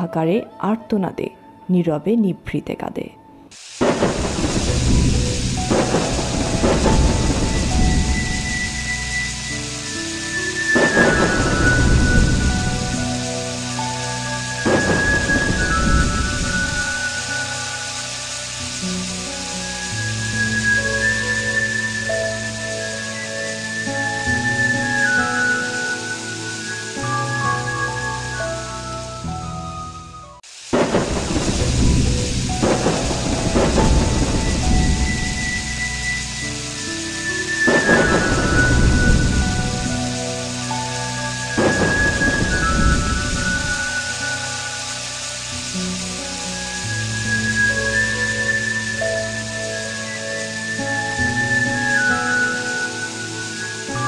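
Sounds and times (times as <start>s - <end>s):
slow background music: 0.0s - 54.0s
steady rain: 3.5s - 54.0s
thunder crash: 3.8s - 17.8s, 30.7s - 44.7s
thunder rumbles: 3.8s - 26.0s, 30.7s - 52.8s.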